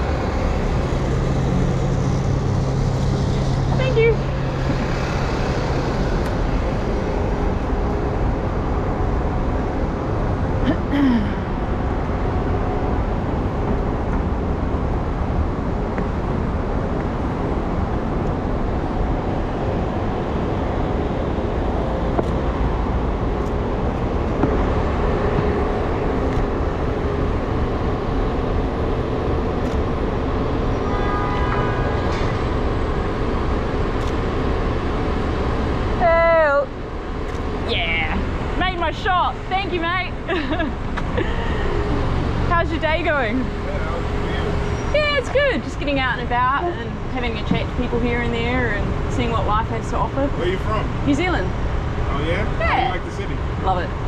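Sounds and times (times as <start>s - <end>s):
city street traffic: 0.0s - 54.0s.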